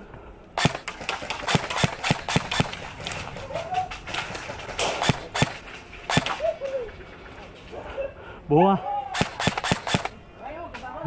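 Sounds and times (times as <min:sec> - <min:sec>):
sharp clacks and knocks: 0:00.6 - 0:06.4, 0:09.2 - 0:10.1.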